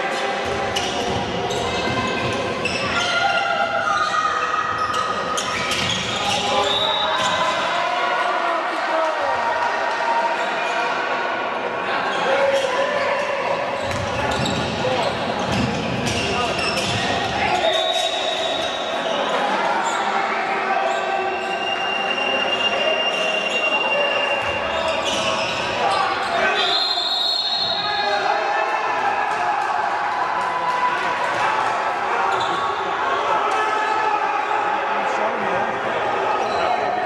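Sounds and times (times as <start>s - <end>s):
players and spectators voices: 0.0s - 37.0s
ball bouncing on court: 13.8s - 14.7s, 15.4s - 17.4s.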